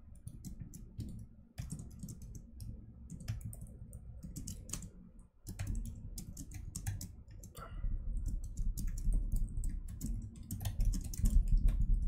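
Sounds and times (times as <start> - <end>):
typing on computer keyboard: 0.2 - 12.0.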